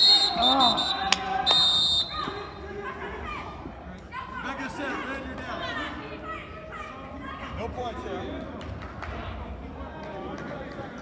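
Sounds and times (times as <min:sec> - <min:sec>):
referee's whistle blast: 0:00.0 - 0:02.6
people chattering: 0:00.0 - 0:11.0.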